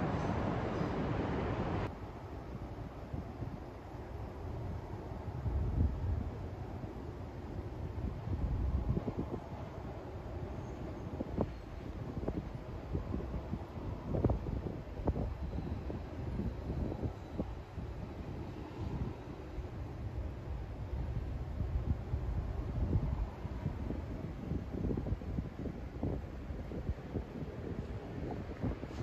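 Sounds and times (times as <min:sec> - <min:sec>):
wind rumbling on microphone: 0:00.0 - 0:29.0.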